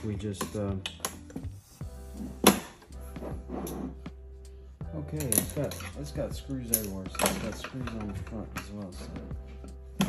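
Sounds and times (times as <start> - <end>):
metal tools clicking on metal case: 5.1 - 8.9.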